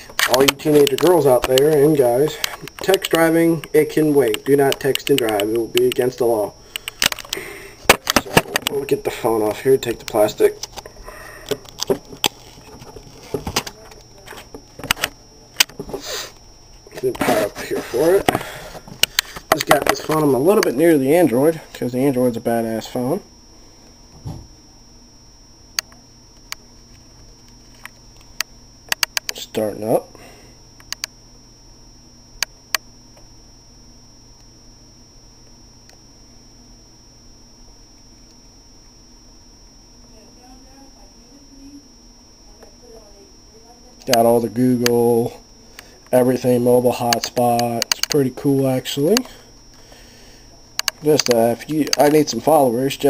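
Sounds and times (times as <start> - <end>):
faint high whine: 0.0 - 53.0.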